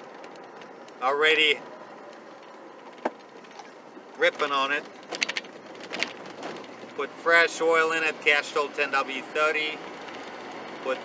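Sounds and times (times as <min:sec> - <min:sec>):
in-cab engine and road noise: 0:00.0 - 0:11.0.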